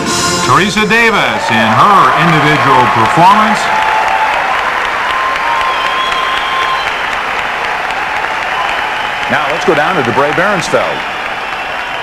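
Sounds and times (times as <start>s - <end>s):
arena audience applauding: 0.5s - 12.0s.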